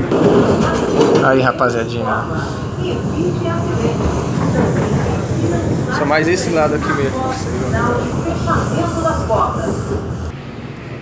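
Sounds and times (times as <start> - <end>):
train rumbling on rails: 0.0 - 11.0.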